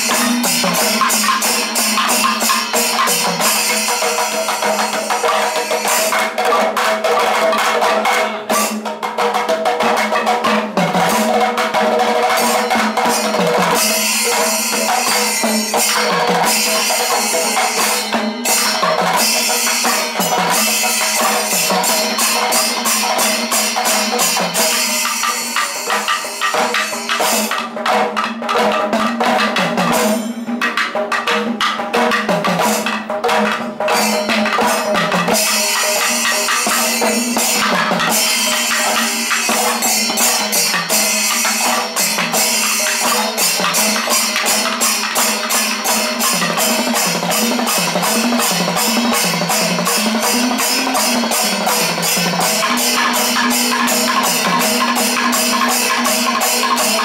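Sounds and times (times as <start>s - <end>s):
hand cymbals clashing: 0.0s - 8.9s, 9.8s - 28.2s, 28.9s - 57.0s
hand drums playing fast rhythm: 0.0s - 57.0s.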